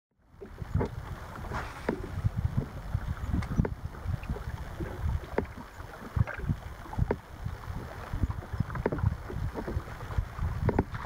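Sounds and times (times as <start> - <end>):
small waves slapping boat hull: 0.2 - 11.0
wind buffeting microphone: 0.3 - 11.0.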